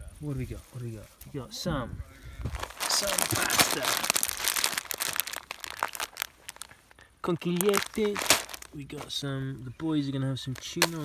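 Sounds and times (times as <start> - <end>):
plastic bag of pasta crinkling: 2.5 - 8.8.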